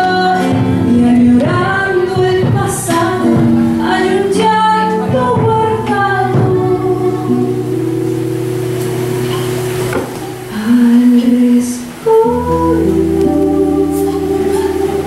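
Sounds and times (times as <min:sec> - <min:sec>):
woman singing folk song: 0:00.0 - 0:08.8, 0:10.4 - 0:15.0
acoustic guitar: 0:00.0 - 0:15.0.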